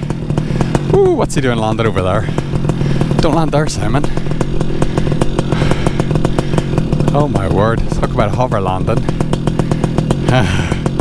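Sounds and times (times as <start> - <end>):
paramotor engine idling: 0.0 - 11.0.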